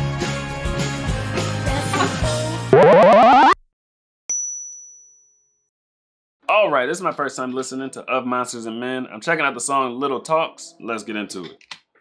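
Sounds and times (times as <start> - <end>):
rising synth sweep: 2.7 - 3.6.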